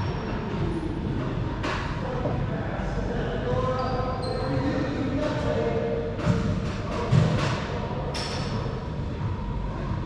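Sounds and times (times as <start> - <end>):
low rumble of enclosed court: 0.0 - 10.0.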